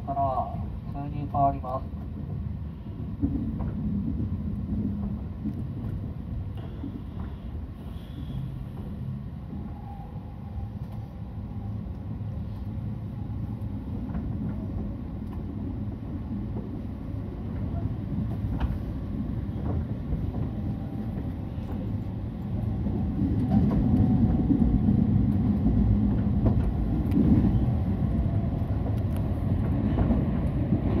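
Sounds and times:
train wheels and motors rumbling: 0:00.0 - 0:31.0.

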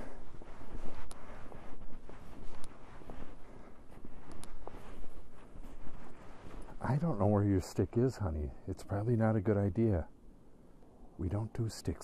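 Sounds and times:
boots crunching through snow: 0:00.0 - 0:08.2
low wind rumble: 0:00.0 - 0:12.0.

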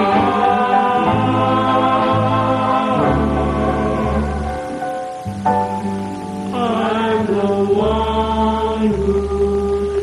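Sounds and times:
vocal group singing harmony: 0:00.0 - 0:05.2, 0:06.2 - 0:10.0.

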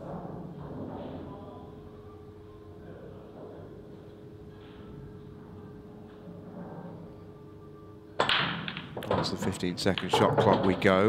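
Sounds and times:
cue ball cracking into rack: 0:08.2 - 0:10.9
pool balls clattering: 0:08.2 - 0:11.0.

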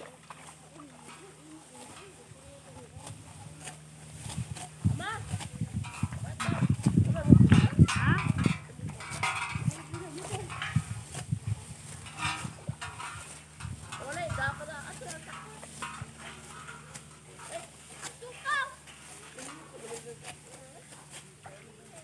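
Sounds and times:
dry stalks rustling and cutting: 0:00.0 - 0:22.0
people talking: 0:00.0 - 0:22.0.

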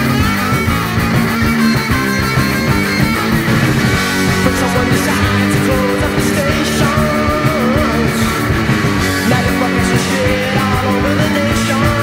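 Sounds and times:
punk rock music: 0:00.0 - 0:12.0.

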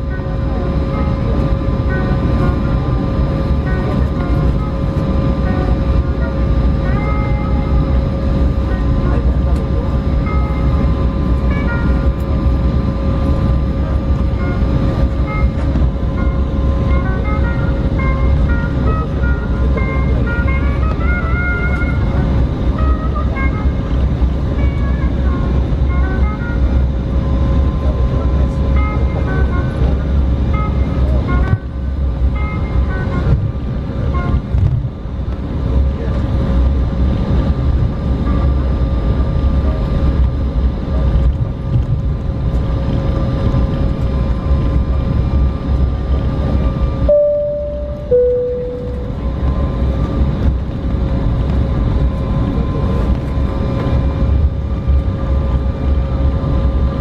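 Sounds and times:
faint steady whine: 0:00.0 - 0:57.0
jet engine rumble: 0:00.0 - 0:57.0
two-note cabin chime: 0:47.1 - 0:49.7.

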